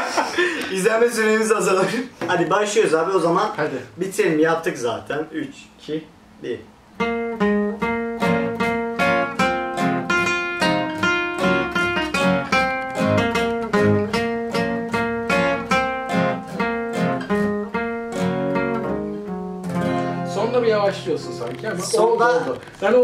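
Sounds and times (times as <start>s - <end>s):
two acoustic guitars playing: 6.9s - 23.0s.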